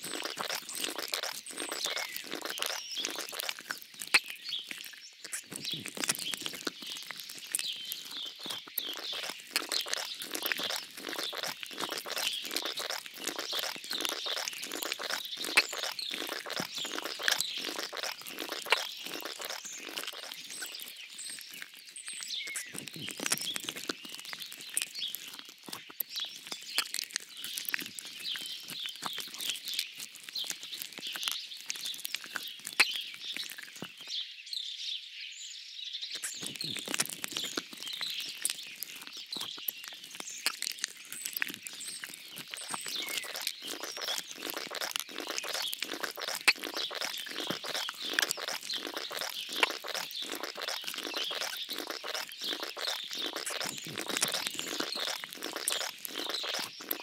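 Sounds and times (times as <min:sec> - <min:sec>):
continuous crackle of clicks: 0:00.0 - 0:34.2, 0:36.2 - 0:57.0
small birds chirping: 0:00.0 - 0:57.0.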